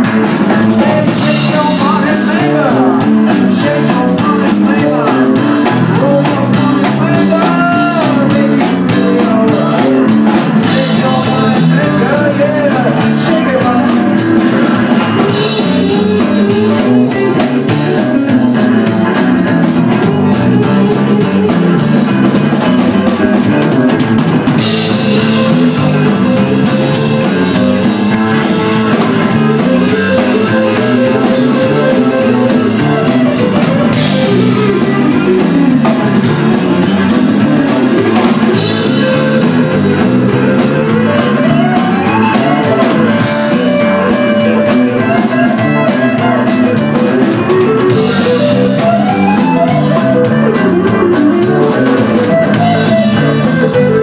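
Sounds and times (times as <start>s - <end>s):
gliding lead guitar: 0.0s - 54.0s
live rock band playing: 0.0s - 54.0s.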